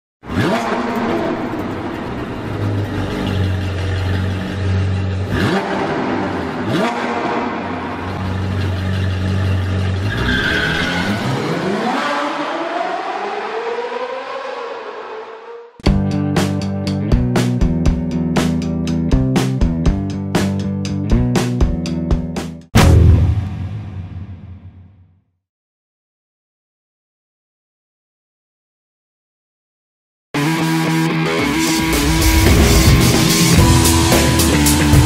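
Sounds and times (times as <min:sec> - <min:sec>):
sports car engine revving: 0:00.2 - 0:15.6, 0:31.2 - 0:35.0
sharp hits: 0:22.7 - 0:25.1, 0:31.5 - 0:35.0.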